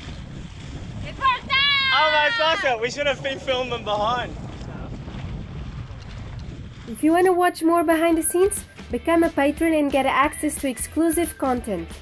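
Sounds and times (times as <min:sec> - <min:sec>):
wind buffeting microphone: 0:00.0 - 0:10.8.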